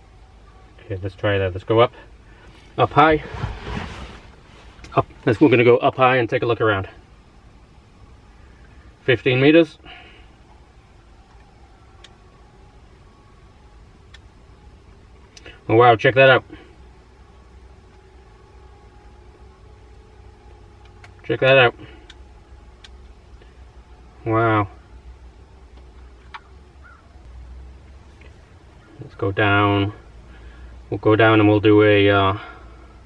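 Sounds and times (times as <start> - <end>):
faint background noise: 0.0 - 33.0
faint steady tones: 0.0 - 33.0
low steady rumble: 0.0 - 33.0
brief bird calls: 26.0 - 27.2.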